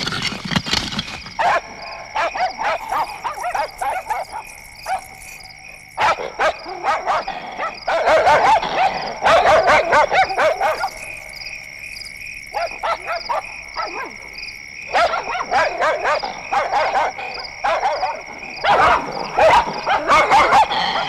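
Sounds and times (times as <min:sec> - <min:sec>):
dogs barking and yelping: 0:00.0 - 0:21.0.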